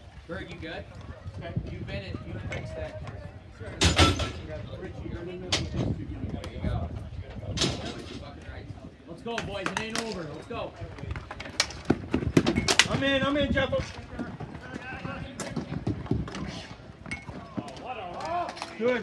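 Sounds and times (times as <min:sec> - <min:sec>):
voices of players and spectators: 0:00.0 - 0:19.0
hockey sticks and ball clacking: 0:09.3 - 0:10.4, 0:11.0 - 0:19.0.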